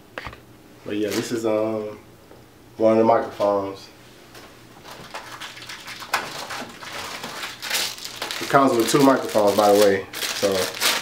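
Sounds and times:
packaging rustling: 4.8s - 11.0s.

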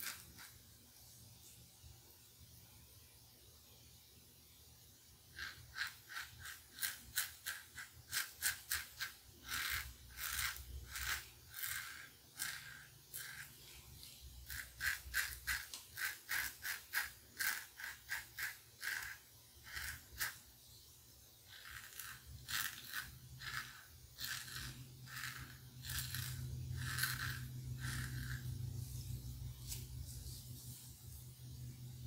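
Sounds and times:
razor scraping stubble: 5.3s - 20.4s, 21.5s - 30.9s.

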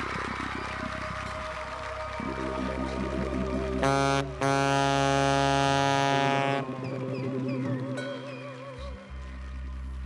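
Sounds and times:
held keyboard chord: 2.2s - 8.4s.

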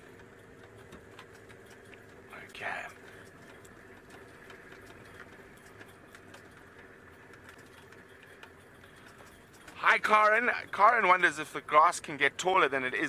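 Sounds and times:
light ticks and rattles: 0.0s - 13.0s
vehicle engine humming: 0.0s - 13.0s.

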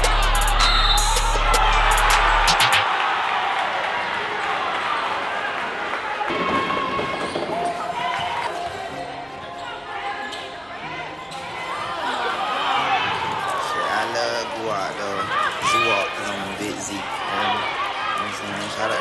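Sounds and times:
crowd chatter: 0.0s - 2.8s, 4.2s - 19.0s
rap music with heavy bass: 0.0s - 2.8s
basketball bouncing on court: 6.3s - 8.5s.

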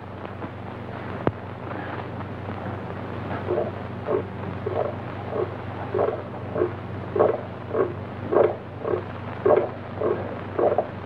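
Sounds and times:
low steady hum: 0.0s - 11.0s
heart beating: 3.4s - 11.0s.

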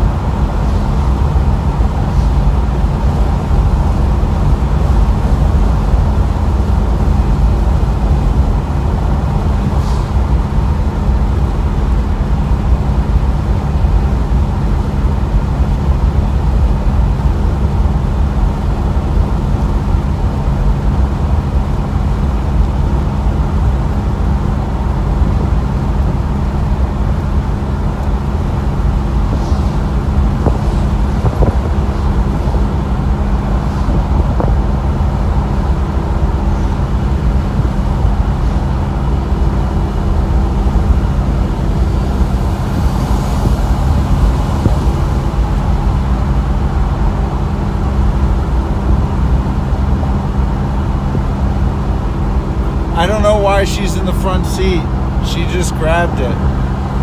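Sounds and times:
tyres on road: 0.0s - 57.0s
wind buffeting: 21.5s - 52.9s.

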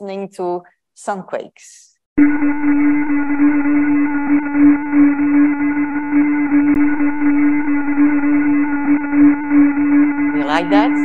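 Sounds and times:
steady hum with low note: 2.2s - 11.0s.

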